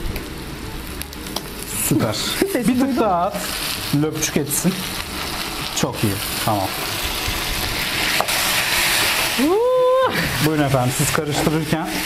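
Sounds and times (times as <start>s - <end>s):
food sizzling in a pan: 0.0s - 12.0s
person vocalizing ooo: 9.4s - 10.4s.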